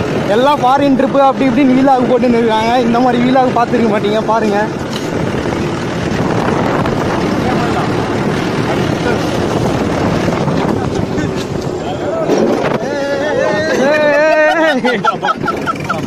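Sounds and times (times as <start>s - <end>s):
wind buffeting microphone: 0.0s - 14.2s
tractor engine running: 0.0s - 16.0s.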